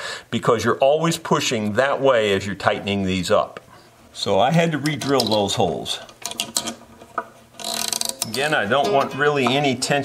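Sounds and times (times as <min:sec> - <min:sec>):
violin tuning peg clicking and creaking: 0:06.0 - 0:09.9.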